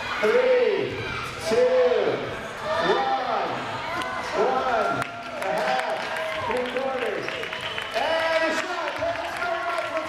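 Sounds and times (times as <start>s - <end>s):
spectators and children shouting: 0.0s - 6.7s.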